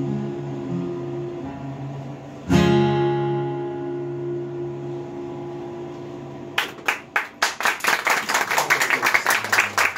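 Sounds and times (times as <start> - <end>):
acoustic guitar chord ringing: 0.0 - 7.2
audience clapping: 6.6 - 9.9.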